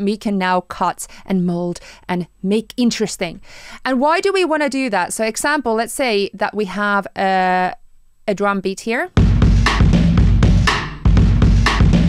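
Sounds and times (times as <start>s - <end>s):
drum loop beat: 9.2s - 12.0s.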